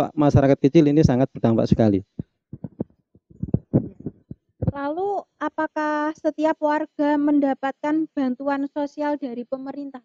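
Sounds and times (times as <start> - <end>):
microphone handling thumps: 1.0 - 4.8.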